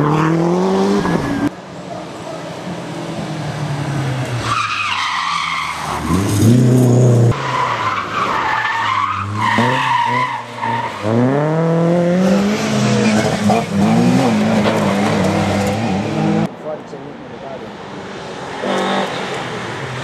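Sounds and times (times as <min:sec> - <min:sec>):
rally car engines revving: 0:00.0 - 0:01.5, 0:02.5 - 0:16.6, 0:17.6 - 0:20.0.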